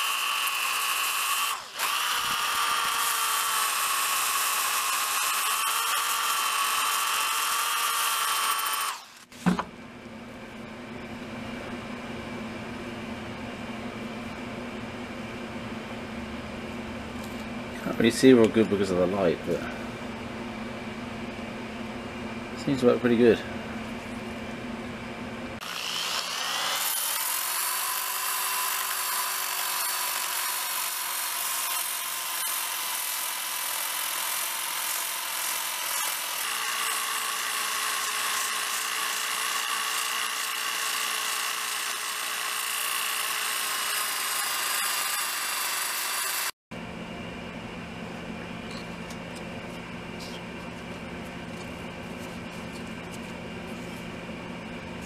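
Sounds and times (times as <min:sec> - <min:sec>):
power sander grinding steel: 0:25.6 - 0:46.6.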